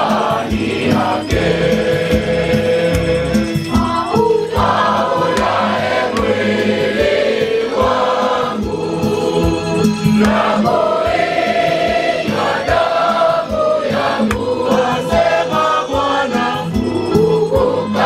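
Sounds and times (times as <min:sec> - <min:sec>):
boys singing a hymn: 0:00.0 - 0:03.1, 0:03.7 - 0:18.0
electronic keyboard with steady beat: 0:00.0 - 0:18.0.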